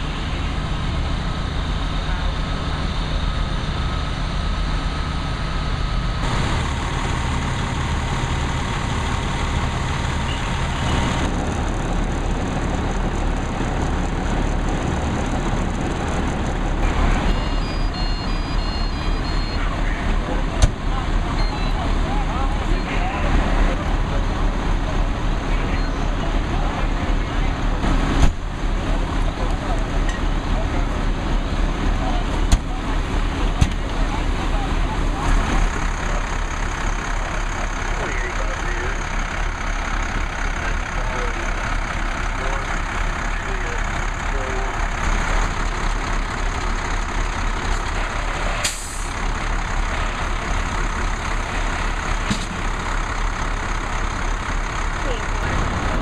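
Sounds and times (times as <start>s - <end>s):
diesel engine droning: 0.0s - 56.0s
people talking: 1.5s - 4.1s, 16.8s - 46.3s, 47.0s - 52.5s, 54.9s - 56.0s
short high electronic beeps: 17.3s - 19.6s.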